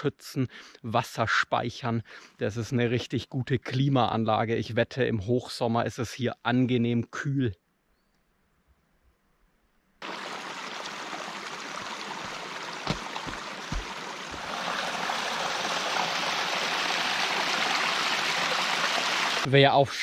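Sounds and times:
brook splashing over rocks: 10.0s - 19.5s
low thuds: 11.8s - 14.5s.

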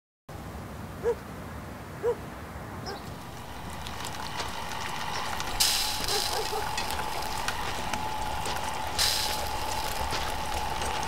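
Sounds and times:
dog barking: 1.0s - 1.2s, 2.0s - 2.2s, 6.1s - 6.7s
lawn mower engine hum: 3.0s - 11.0s
rushing hiss: 3.0s - 11.0s.

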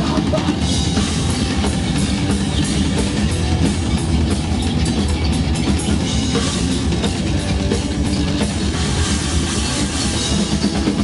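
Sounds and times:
live punk band playing: 0.0s - 11.0s.

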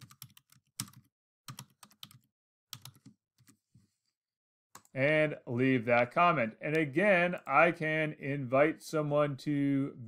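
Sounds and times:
faint keyboard typing: 0.0s - 3.6s.

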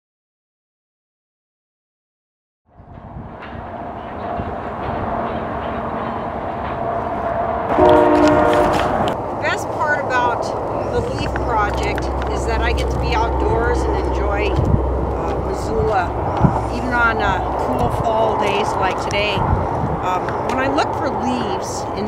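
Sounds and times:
outdoor rumble: 2.7s - 22.0s
distant train horn: 3.0s - 12.6s.

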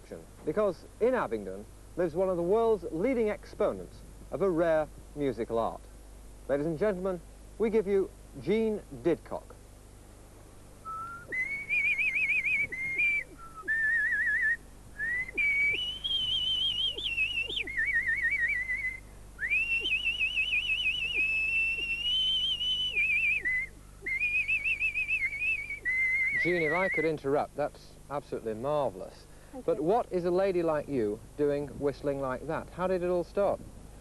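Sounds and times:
woman whistling a tune: 10.9s - 26.3s
short breaths: 29.3s - 29.7s.

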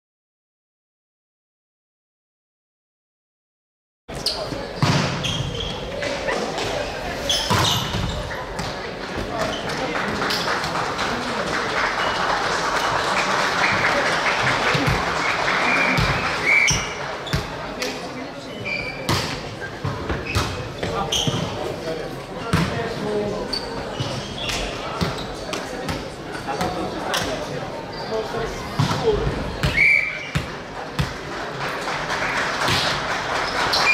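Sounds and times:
volleyball being hit and bouncing: 4.7s - 6.8s, 7.4s - 9.7s, 15.8s - 18.0s, 19.0s - 21.6s, 28.8s - 31.3s, 32.7s - 33.0s.

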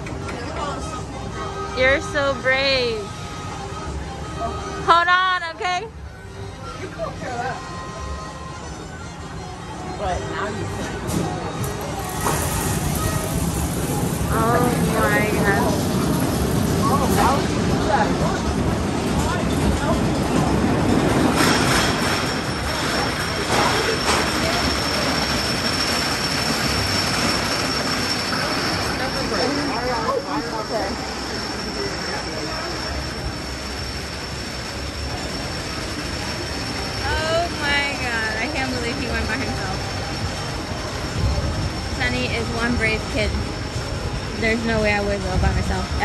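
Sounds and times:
roller coaster rumbling clatter: 10.7s - 46.0s.

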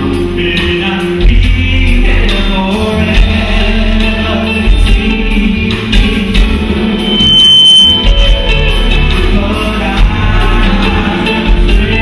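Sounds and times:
live soul band with singing: 0.0s - 12.0s
high-pitched tone: 6.9s - 9.2s.

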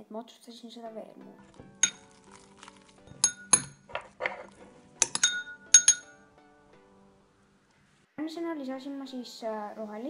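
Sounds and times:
metal spoon clinking on ceramic bowl: 1.8s - 2.1s, 3.1s - 3.9s, 5.0s - 6.2s.

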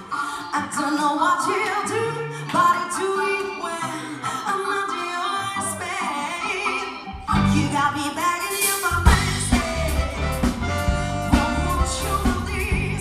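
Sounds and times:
live band: 0.0s - 13.0s
woman singing: 0.0s - 13.0s
bass notes: 7.2s - 7.9s, 9.0s - 13.0s.

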